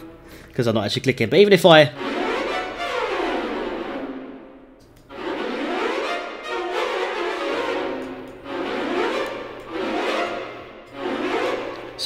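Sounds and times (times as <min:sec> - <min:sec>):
orchestral strings spiccato notes: 0:01.8 - 0:12.0.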